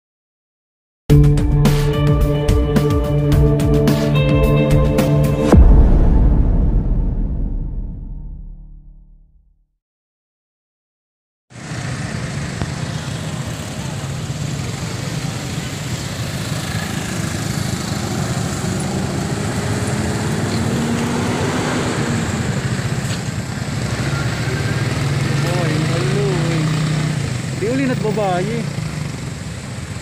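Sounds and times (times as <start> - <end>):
motorcycle engines passing: 11.6 - 30.0
people's voices: 20.4 - 28.8.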